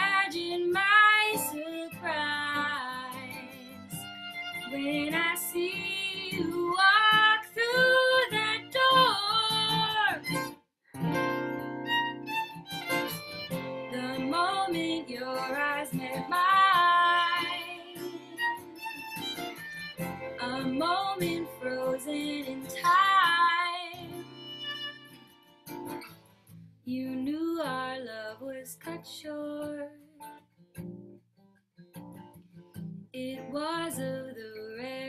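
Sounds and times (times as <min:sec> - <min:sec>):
woman singing a ballad: 0:00.0 - 0:04.0, 0:04.7 - 0:10.3, 0:13.9 - 0:18.6, 0:20.4 - 0:24.2, 0:26.9 - 0:30.2, 0:33.2 - 0:35.0
fiddle: 0:00.0 - 0:26.1
violin: 0:00.0 - 0:26.1
acoustic guitar: 0:00.0 - 0:35.0.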